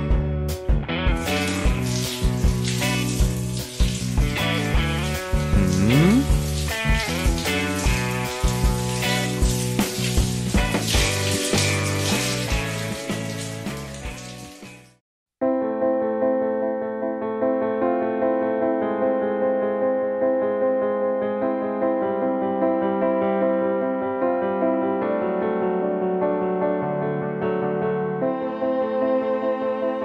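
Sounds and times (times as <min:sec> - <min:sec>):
soft keyboard tune: 0:05.2 - 0:06.6, 0:15.4 - 0:30.0.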